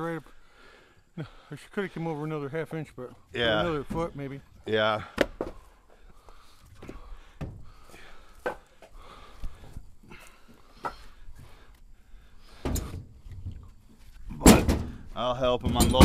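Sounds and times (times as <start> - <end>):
firewood logs knocking and thudding: 5.0 - 5.7, 6.7 - 9.9, 10.5 - 11.6, 12.5 - 16.0.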